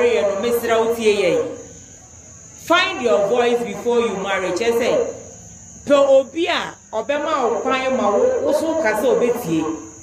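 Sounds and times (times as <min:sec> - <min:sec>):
woman talking: 0:00.0 - 0:01.6, 0:02.6 - 0:05.2, 0:05.9 - 0:09.9.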